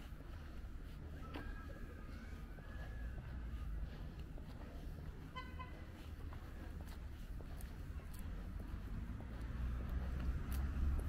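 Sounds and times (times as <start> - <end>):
steady low rumble: 0.0 - 11.0
vehicle horn toot: 5.3 - 5.8.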